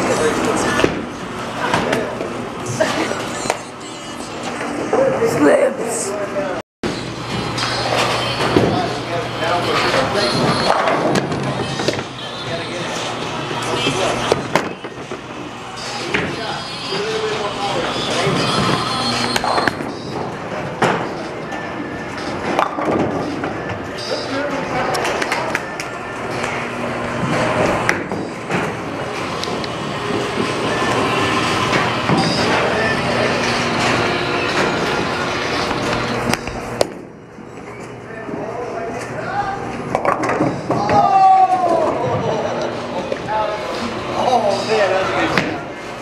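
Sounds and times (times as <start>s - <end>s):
hubbub of voices: 7.4s - 46.0s
bowling balls rolling: 16.0s - 23.9s, 24.6s - 37.3s, 39.6s - 43.9s.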